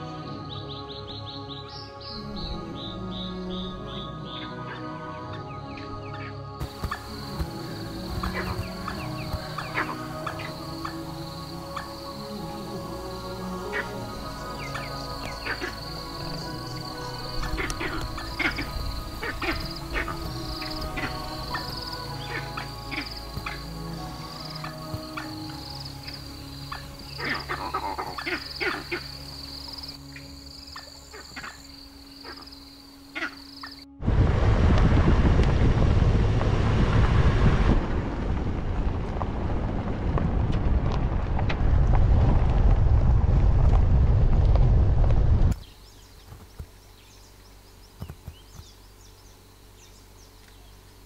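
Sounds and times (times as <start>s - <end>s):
wind noise on microphone: 34.0s - 45.6s.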